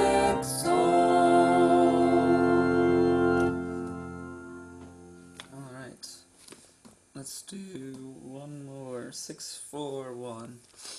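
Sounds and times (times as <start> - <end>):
two voices singing a hymn: 0.0 - 3.9
organ accompaniment: 0.0 - 5.7.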